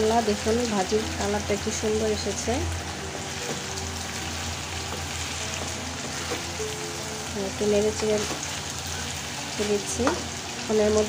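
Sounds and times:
vegetables sizzling in oil: 0:00.0 - 0:11.0.

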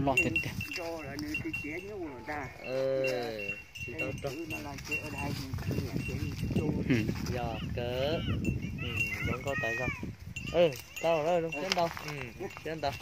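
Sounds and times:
voices: 0:00.0 - 0:13.0.

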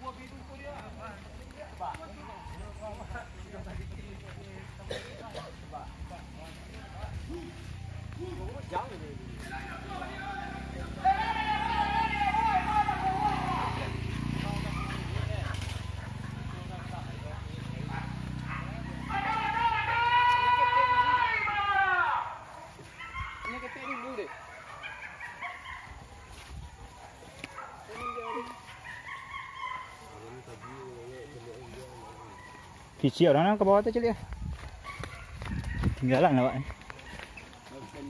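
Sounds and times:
men shouting long calls: 0:00.0 - 0:24.5.

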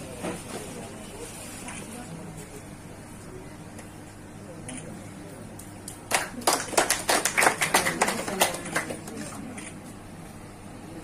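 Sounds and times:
people clapping: 0:05.6 - 0:09.5.

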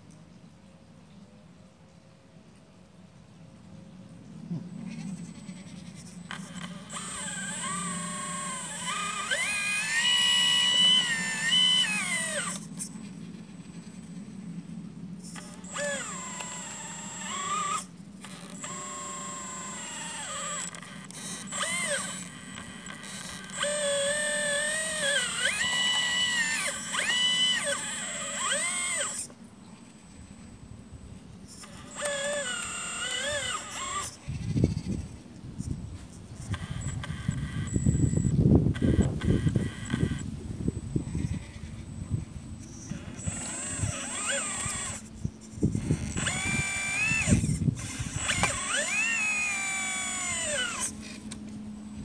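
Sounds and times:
steady low hum: 0:00.0 - 0:52.0
hydraulic pump whining: 0:05.1 - 0:13.8, 0:15.2 - 0:29.4, 0:31.4 - 0:34.7, 0:36.4 - 0:52.0.

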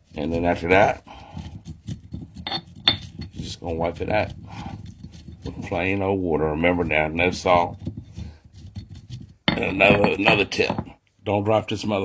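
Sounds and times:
pestle grinding in stone mortar: 0:00.0 - 0:11.0.

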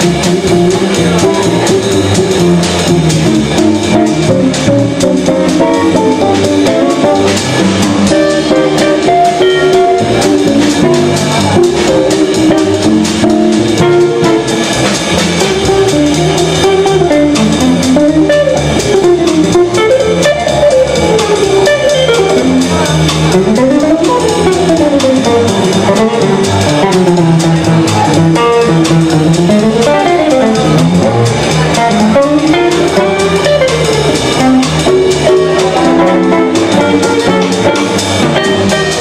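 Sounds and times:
drum kit with cymbals: 0:00.0 - 0:39.0
electric guitar runs: 0:00.0 - 0:39.0
upright double bass: 0:00.0 - 0:39.0.

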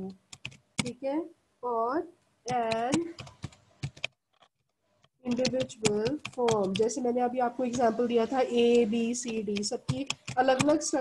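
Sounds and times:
computer keyboard typing: 0:00.0 - 0:01.0, 0:02.5 - 0:04.2, 0:05.2 - 0:07.0, 0:08.6 - 0:11.0.

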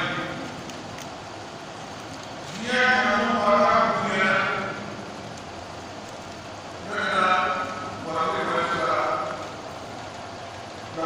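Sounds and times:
large hall background noise: 0:00.0 - 0:11.0
man speaking through microphone: 0:02.5 - 0:05.0, 0:06.8 - 0:09.6.

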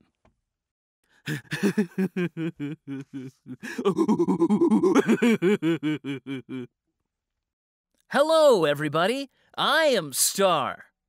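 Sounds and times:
man laughing in cartoon voice: 0:01.3 - 0:06.7.

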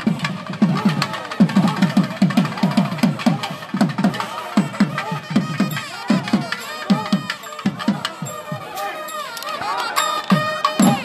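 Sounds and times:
barrel drums fast rhythm: 0:00.0 - 0:11.0.

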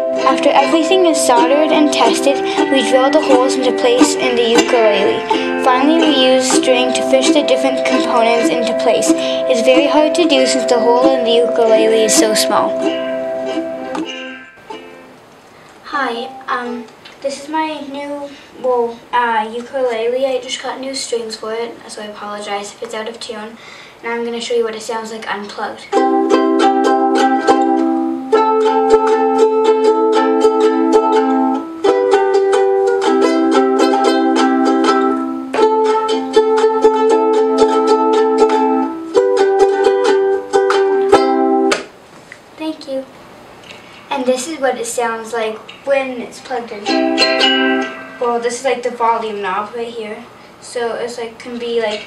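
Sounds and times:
ukulele chord ringing: 0:00.0 - 0:15.1, 0:26.0 - 0:41.8, 0:46.8 - 0:48.6
ukulele music: 0:00.0 - 0:15.2, 0:16.1 - 0:16.9, 0:25.9 - 0:41.9, 0:46.6 - 0:48.7
child's voice: 0:00.2 - 0:12.9, 0:15.8 - 0:26.0, 0:42.6 - 0:43.1, 0:44.1 - 0:47.2, 0:48.1 - 0:52.0.

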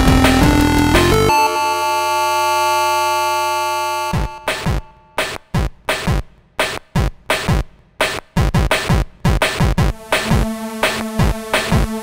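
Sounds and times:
held synthesizer note: 0:00.0 - 0:05.1.

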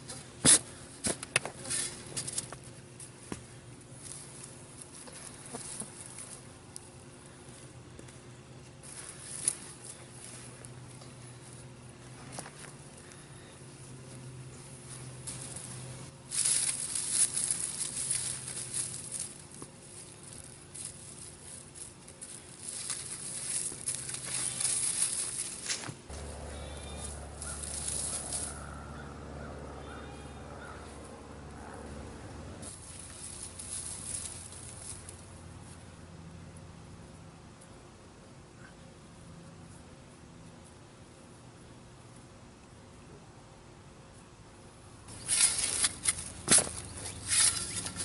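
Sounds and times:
hands digging through dry soil: 0:00.0 - 0:29.1, 0:32.6 - 0:35.2, 0:45.1 - 0:48.0
low steady hum: 0:00.0 - 0:48.0.

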